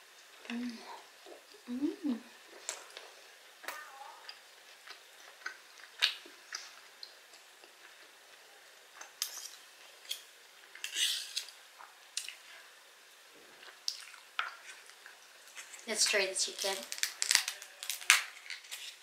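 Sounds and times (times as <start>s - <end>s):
person humming: 0.4s - 1.0s, 1.6s - 2.4s.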